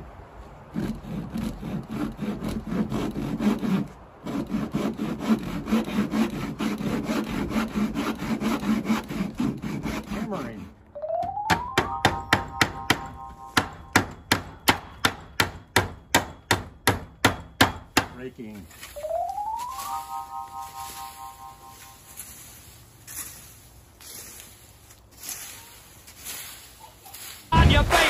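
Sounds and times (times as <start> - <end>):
hand saw cutting wood: 0.7 - 10.8.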